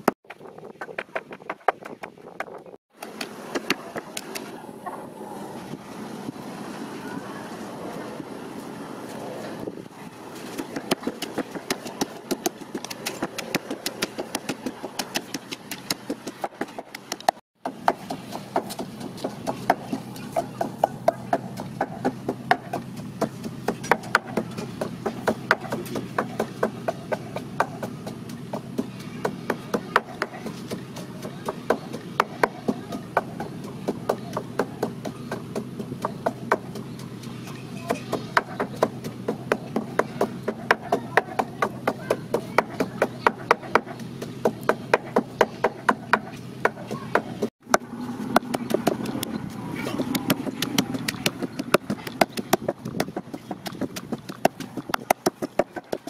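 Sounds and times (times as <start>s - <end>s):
pestle pounding in mortar: 0.0s - 4.5s, 10.5s - 56.0s.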